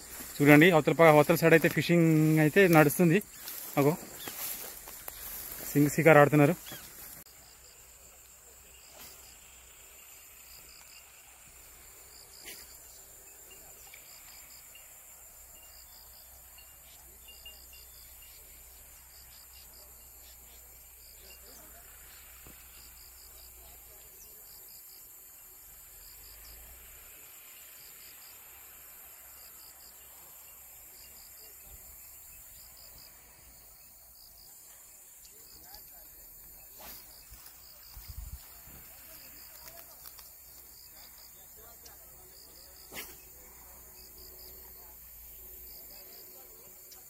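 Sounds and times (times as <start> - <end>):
insects chirping: 0.0 - 47.0
steady hiss: 0.0 - 47.0.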